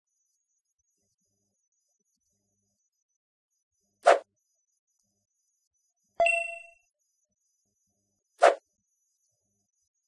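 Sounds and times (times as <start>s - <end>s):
bell-like notification ding: 6.2s - 6.8s.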